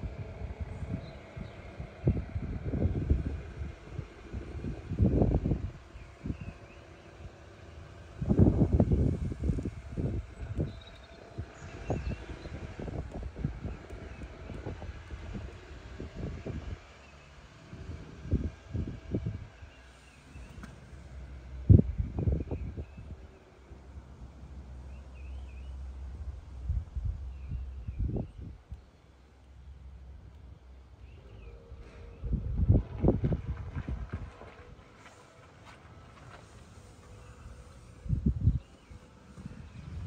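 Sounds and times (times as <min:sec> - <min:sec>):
wind buffeting microphone: 0:00.0 - 0:28.8, 0:31.1 - 0:40.0.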